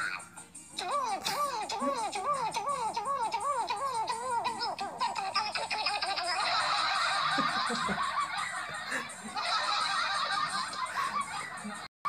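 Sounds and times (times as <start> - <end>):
high-pitched laughter: 0.8 - 11.9.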